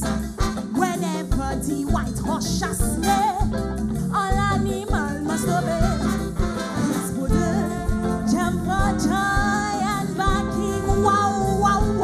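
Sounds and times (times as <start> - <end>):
person singing into a microphone: 7.0 - 12.0.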